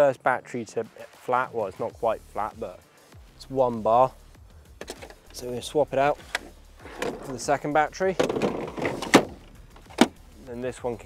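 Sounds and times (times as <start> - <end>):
battery latching click: 4.8 - 5.4.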